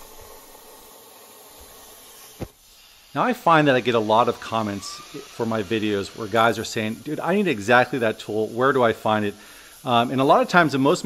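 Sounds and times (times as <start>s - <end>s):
plasma torch hissing: 0.0s - 11.0s.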